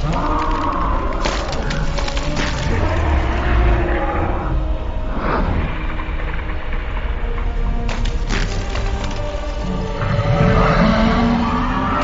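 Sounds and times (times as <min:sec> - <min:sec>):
cracking splintering crashes: 0:00.0 - 0:03.2, 0:07.7 - 0:10.4
deep rumble: 0:00.0 - 0:12.0.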